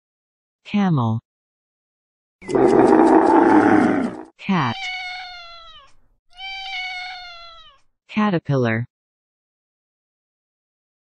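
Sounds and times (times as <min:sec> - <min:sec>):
cat meowing: 0:03.8 - 0:07.8.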